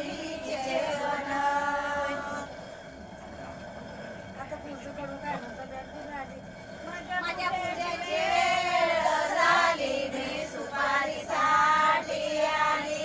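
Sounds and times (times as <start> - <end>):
women singing together: 0.0 - 3.0, 7.0 - 13.0
faint voices: 0.0 - 10.6.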